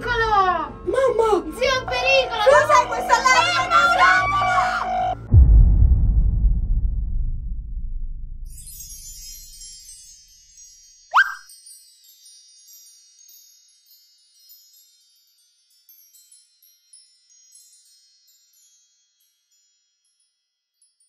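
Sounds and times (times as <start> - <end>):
low background music: 0.0 - 5.2
twinkling chime notes: 8.5 - 21.0.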